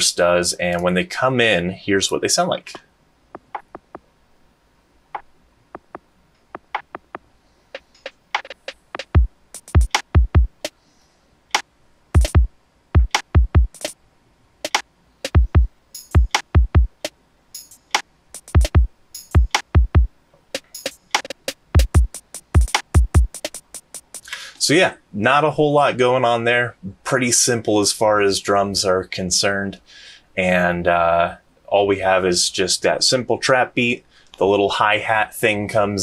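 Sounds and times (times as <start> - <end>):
crisp hi-hats: 2.7 - 4.1, 5.2 - 14.0, 14.6 - 24.7
snare hits: 3.4 - 4.0, 6.6 - 7.2, 8.0 - 10.7, 14.6 - 15.5, 20.8 - 24.2
electronic drum beat: 3.4 - 4.1, 5.2 - 10.7, 12.2 - 14.0, 14.6 - 17.8, 18.4 - 24.2
deep kicks with low boom: 9.2 - 10.5, 12.2 - 13.7, 15.4 - 16.9, 18.6 - 20.1.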